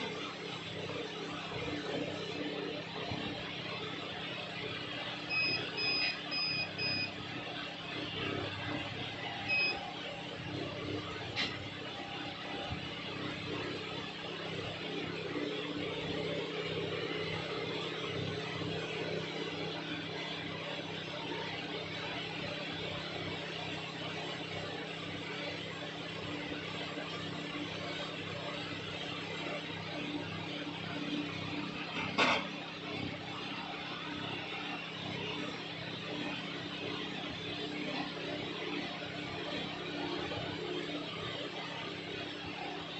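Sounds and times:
short electronic beeps: 5.3 - 7.1, 9.5 - 9.8.

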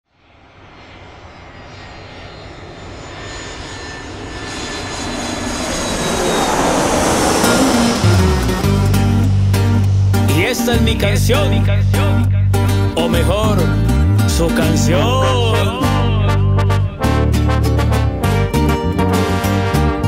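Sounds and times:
jet engine rushing whine: 0.1 - 14.7
music with deep bass and beat: 8.0 - 15.0.

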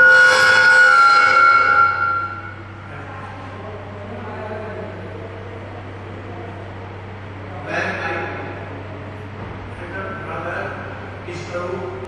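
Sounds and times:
loud multi-pitch horn tone: 0.0 - 2.9.

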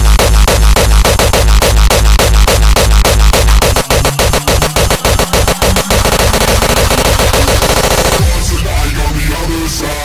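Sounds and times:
distorted kick drum: 0.0 - 8.7
hardcore techno music: 0.0 - 10.0
fast drum roll: 0.4 - 8.3.

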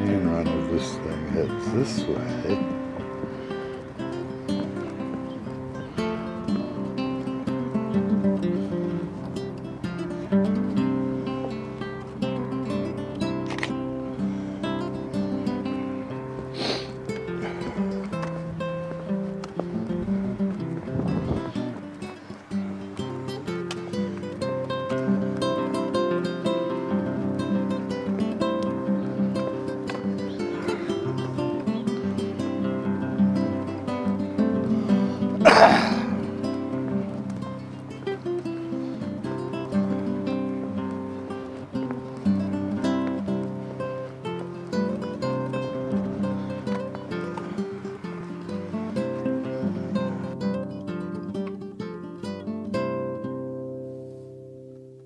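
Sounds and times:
acoustic guitar music: 0.0 - 55.0.

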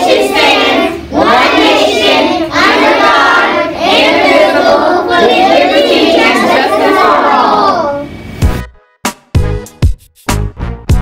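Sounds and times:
children singing in unison: 0.0 - 8.0.

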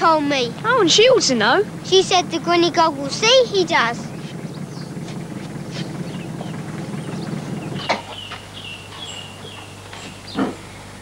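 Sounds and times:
low rumble: 0.0 - 8.8
faint outdoor background: 0.0 - 11.0
high bird chirps: 3.8 - 10.4.

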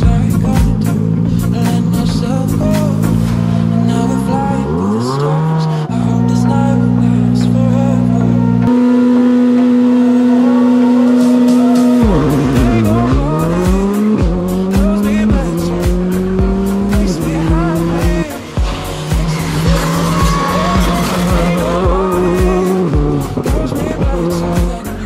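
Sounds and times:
rally car engine revving: 0.0 - 25.0.

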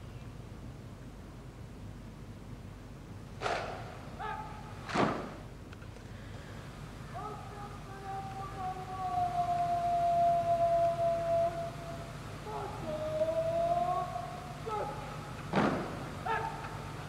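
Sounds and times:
person shouting commands: 4.1 - 4.7, 7.1 - 17.0
rifles crashing in unison: 4.8 - 5.4.

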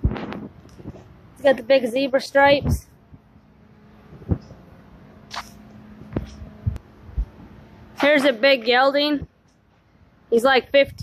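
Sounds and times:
faint steady hum: 0.0 - 11.0
footsteps on concrete floor: 5.3 - 8.8.

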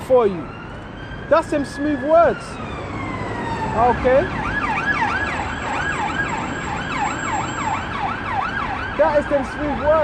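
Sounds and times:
emergency siren yelping: 0.0 - 10.0.

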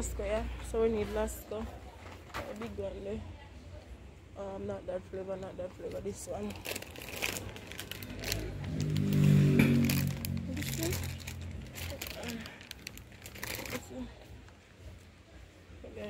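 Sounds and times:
crinkling and rustling from handling: 5.2 - 15.5.

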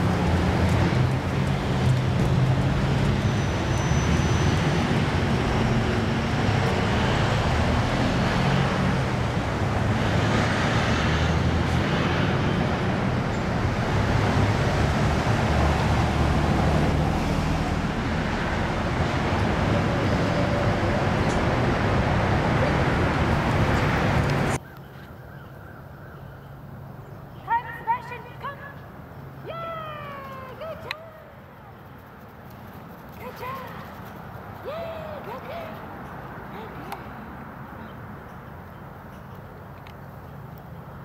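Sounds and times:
vehicles passing: 0.0 - 41.0.

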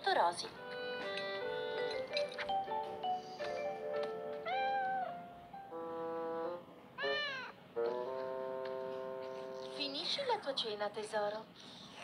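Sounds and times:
background music held note: 0.6 - 10.2
cartoon cat meowing: 4.4 - 5.2, 7.0 - 7.6.

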